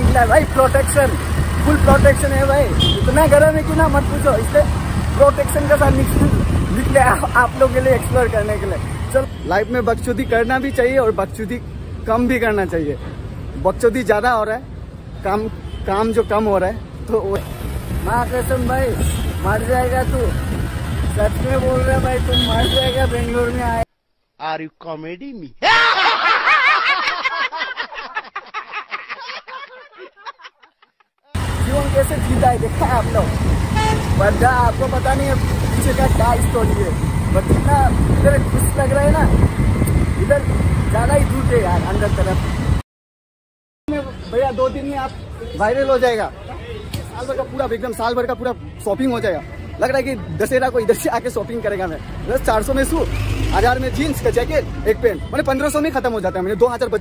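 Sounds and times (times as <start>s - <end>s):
man talking: 0.0s - 13.0s, 13.6s - 25.6s, 31.4s - 33.4s, 34.1s - 39.4s
low rumble of road traffic: 0.0s - 23.9s, 31.4s - 42.8s, 43.9s - 57.0s
men laughing loudly: 25.6s - 31.1s.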